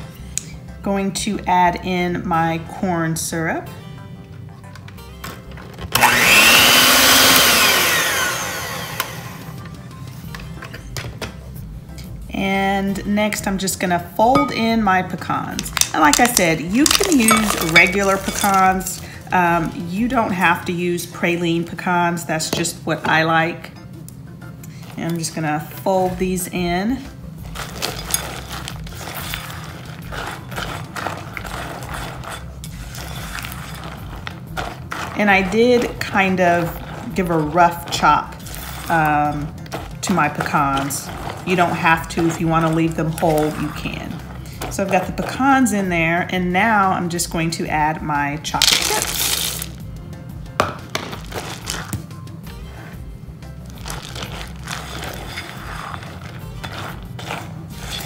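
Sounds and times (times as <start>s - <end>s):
electric hand mixer whine: 5.9s - 9.6s
nuts clicking against bowl: 15.6s - 18.6s
spatula scraping a bowl: 15.7s - 20.3s, 27.4s - 46.1s, 52.6s - 58.0s.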